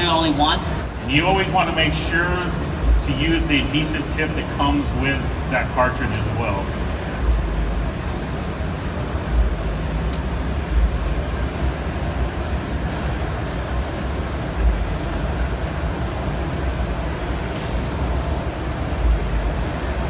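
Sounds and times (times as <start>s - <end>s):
busy hall rumble: 0.0s - 20.0s.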